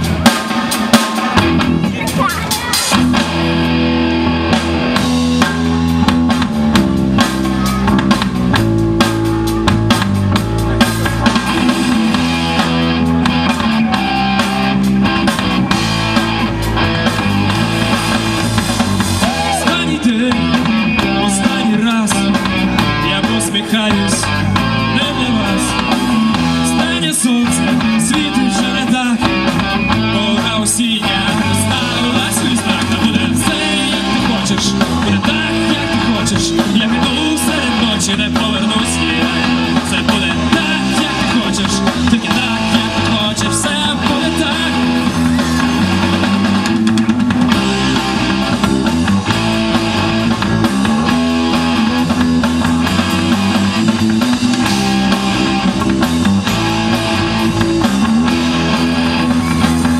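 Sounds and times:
drum kit: 0:00.0 - 0:59.9
electric guitars: 0:00.0 - 0:59.9
man singing: 0:19.2 - 0:46.2.

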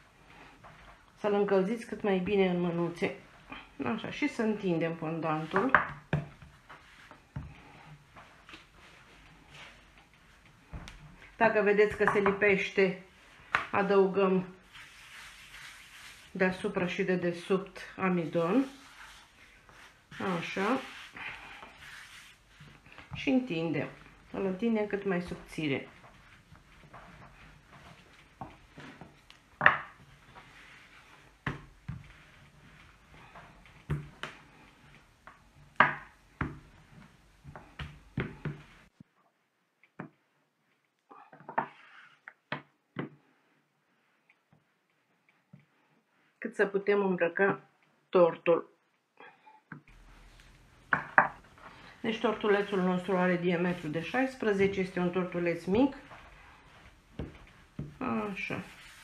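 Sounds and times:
rolling pin on fondant: 0:00.2 - 0:12.7, 0:13.5 - 0:39.2, 0:49.9 - 0:59.0
rolling pin thumping on wood: 0:29.6 - 0:30.0.

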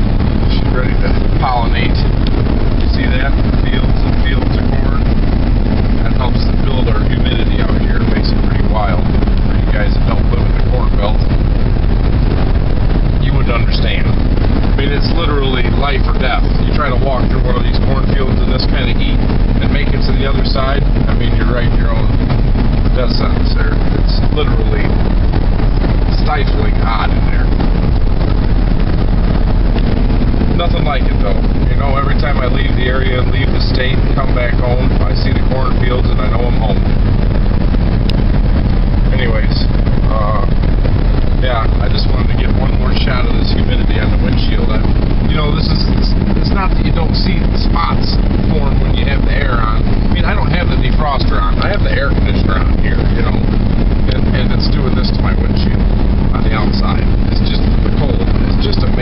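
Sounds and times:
vehicle engine and road noise: 0:00.0 - 0:59.0.

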